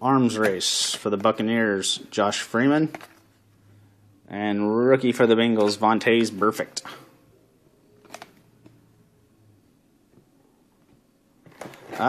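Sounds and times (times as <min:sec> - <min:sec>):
trading cards handled: 0:00.3 - 0:01.4, 0:02.8 - 0:03.4, 0:08.0 - 0:08.8.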